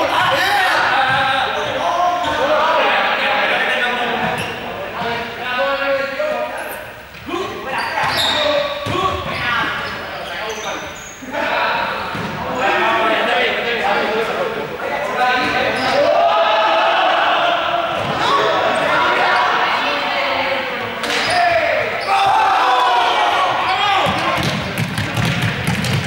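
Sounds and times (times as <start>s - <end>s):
voices shouting and calling: 0.0s - 24.5s
balls bouncing on hard floor: 24.0s - 26.0s.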